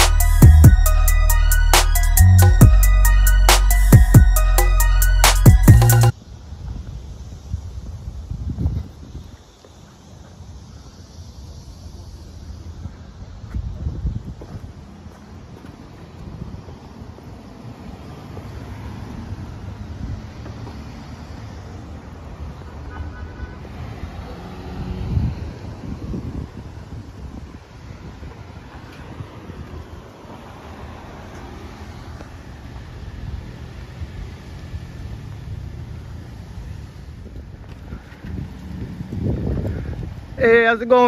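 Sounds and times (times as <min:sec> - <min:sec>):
low traffic rumble: 0:00.0 - 0:41.0
wind buffeting microphone: 0:06.1 - 0:17.9, 0:24.6 - 0:41.0.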